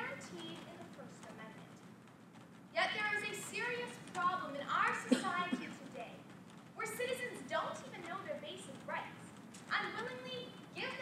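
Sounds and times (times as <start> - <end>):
young woman giving a speech: 2.8 - 6.2, 6.8 - 11.0.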